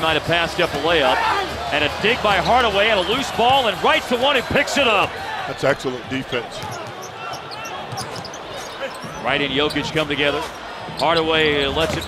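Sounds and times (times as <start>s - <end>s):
basketball dribbling: 6.6s - 9.2s
sneaker squeaks: 6.6s - 12.0s.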